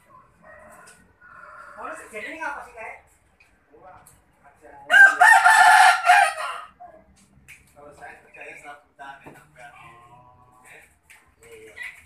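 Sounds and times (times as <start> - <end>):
rooster crowing: 0.0 - 2.1, 4.9 - 6.8.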